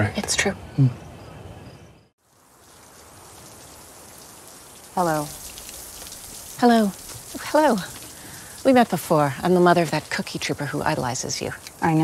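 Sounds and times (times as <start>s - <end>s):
shower water spraying: 2.2s - 12.0s.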